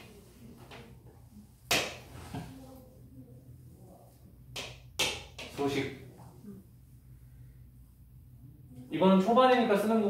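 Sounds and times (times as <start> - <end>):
low room hum: 0.0 - 10.0
marker tapping on whiteboard: 4.5 - 5.6.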